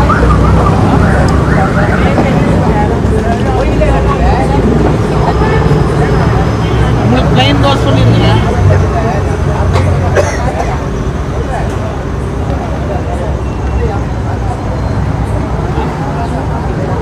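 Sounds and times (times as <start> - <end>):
people chattering: 0.0 - 17.0
road traffic engine hum: 0.0 - 17.0.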